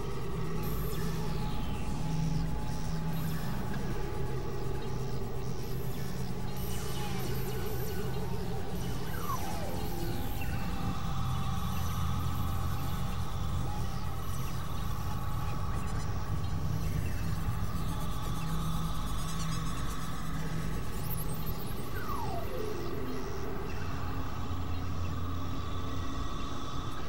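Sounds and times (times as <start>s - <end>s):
low synthesizer drone: 0.0s - 27.0s.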